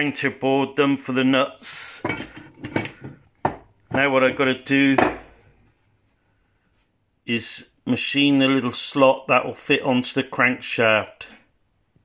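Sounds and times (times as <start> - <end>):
metal scraping on wood: 2.0 - 6.1.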